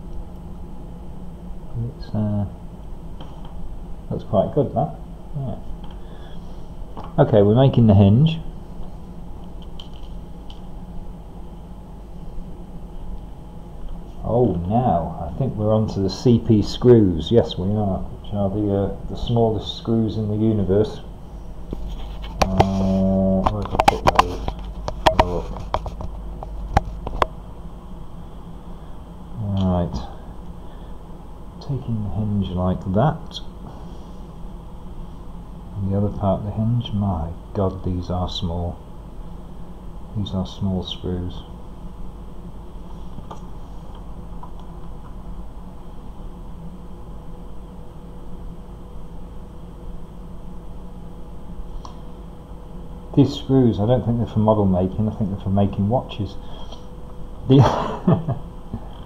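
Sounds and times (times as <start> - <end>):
low background hum: 0.0 - 59.0.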